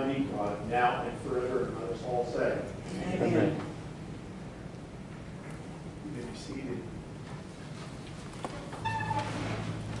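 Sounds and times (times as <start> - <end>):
wooden pews creaking: 7.4 - 10.0
short high squeak: 8.8 - 9.8.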